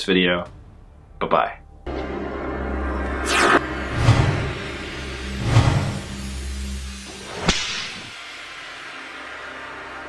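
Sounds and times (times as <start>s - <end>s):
low hum: 0.6s - 10.0s
low rumble: 1.7s - 7.3s
whoosh: 2.6s - 8.2s.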